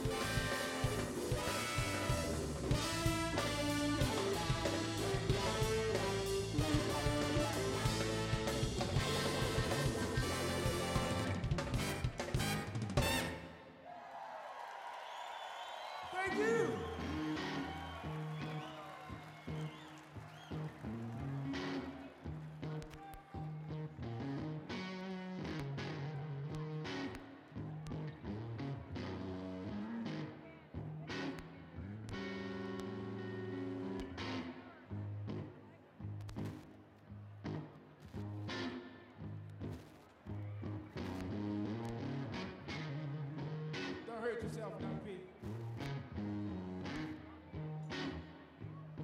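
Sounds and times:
electric guitar: 0:00.0 - 0:13.6, 0:16.7 - 0:49.0
live band music: 0:00.0 - 0:13.7, 0:16.3 - 0:35.6, 0:37.3 - 0:49.0.

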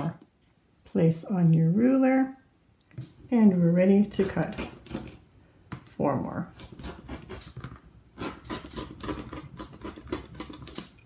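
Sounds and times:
rotary cutter slicing fabric: 0:08.2 - 0:10.9.

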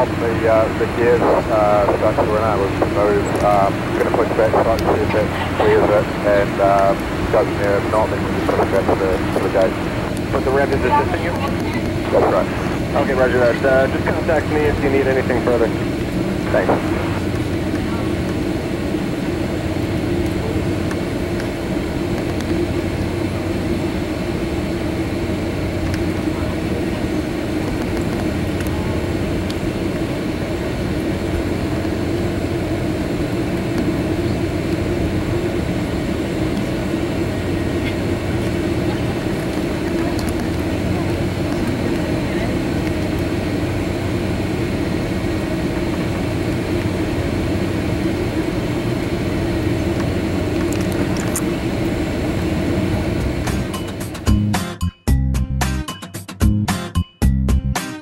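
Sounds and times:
jet engine drone inside cabin: 0:00.0 - 0:54.4.

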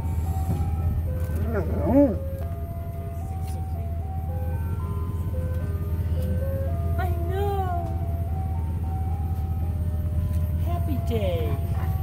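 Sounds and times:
ice cream truck jingle: 0:00.0 - 0:12.0.

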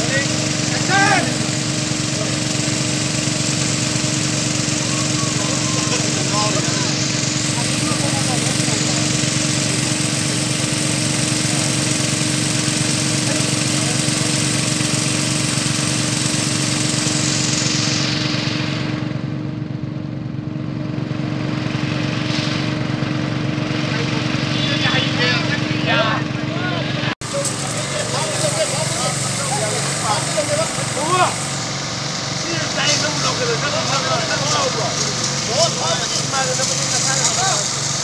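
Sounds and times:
rain spray hissing on pavement: 0:00.0 - 0:18.8, 0:27.2 - 0:38.0
small engine running: 0:00.0 - 0:38.0.

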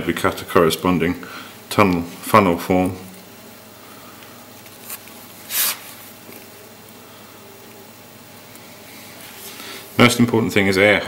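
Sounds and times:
short hiss: 0:05.4 - 0:06.0.

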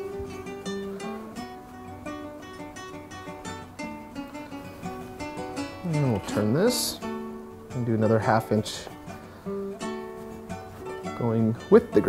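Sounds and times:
plucked strings music: 0:00.0 - 0:12.0.

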